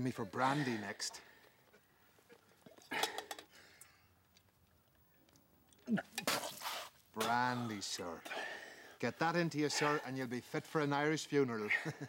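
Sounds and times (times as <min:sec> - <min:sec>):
man gasping and breathing heavily: 0:00.4 - 0:01.8, 0:07.6 - 0:09.0.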